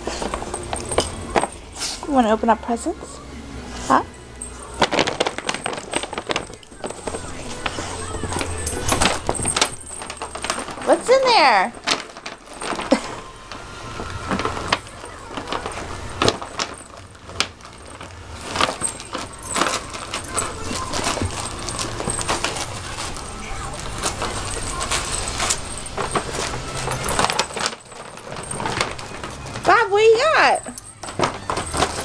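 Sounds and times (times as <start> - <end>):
light metallic jingling: 0.0 - 3.2, 3.9 - 32.0
paper bag and tissue rustling: 0.0 - 32.0.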